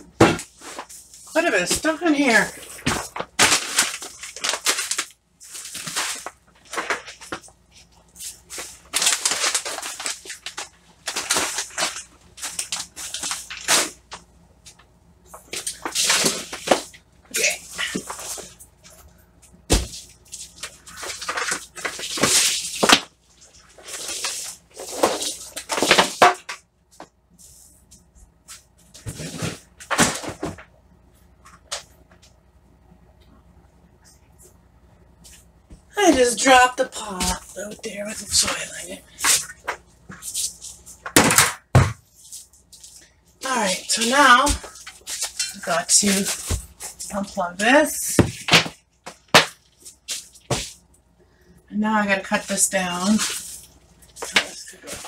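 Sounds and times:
faint steady hum: 0.0s - 55.0s.

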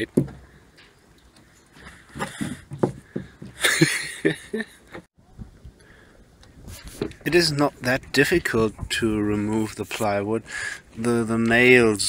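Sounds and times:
man laughing: 3.6s - 5.0s.

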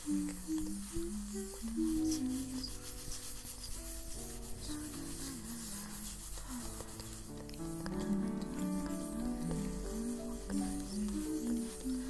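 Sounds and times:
person humming: 0.0s - 3.0s, 4.5s - 12.0s
hairbrush stroking through hair: 0.0s - 12.0s
soft piano music: 0.0s - 12.0s.

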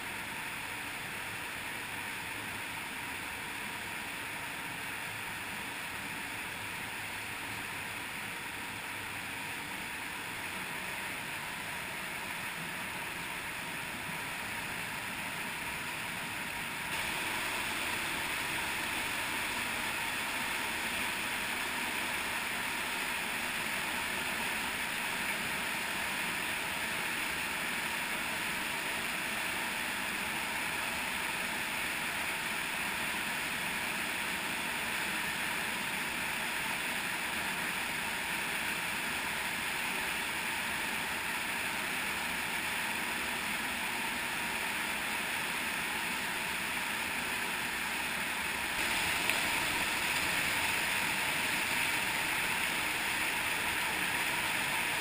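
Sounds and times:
stream pouring over small waterfalls: 10.4s - 55.0s.

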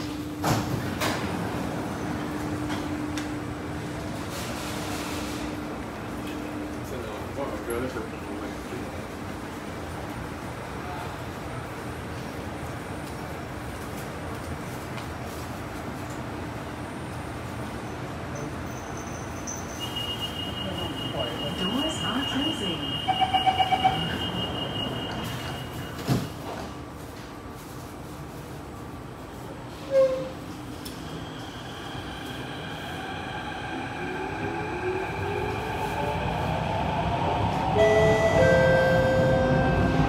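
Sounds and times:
train doors shutting thump: 0.4s - 1.4s, 25.9s - 26.8s.

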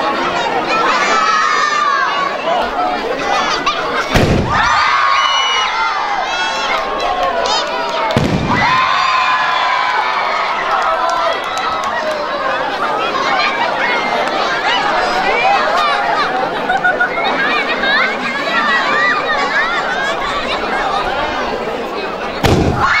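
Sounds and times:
crowd shouting and cheering: 0.0s - 23.0s
firework launch thumps: 4.1s - 4.8s, 8.1s - 8.8s, 22.4s - 22.9s.

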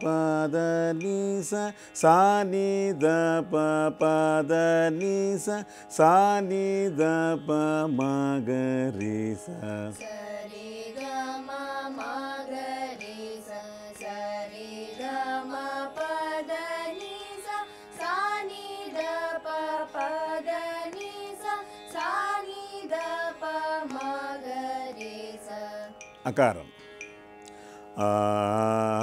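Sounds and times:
girls singing scale exercise: 6.9s - 26.1s.

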